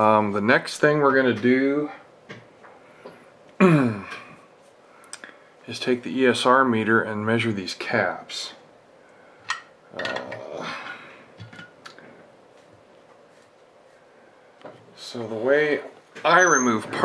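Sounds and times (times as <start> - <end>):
tools clattering on a workbench: 9.5 - 10.5, 11.4 - 11.9.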